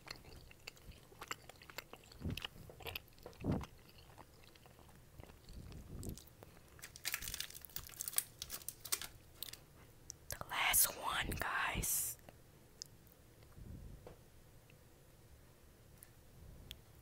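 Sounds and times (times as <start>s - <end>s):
candy wrapper crinkling: 6.1s - 9.6s
person's voice: 10.3s - 12.2s.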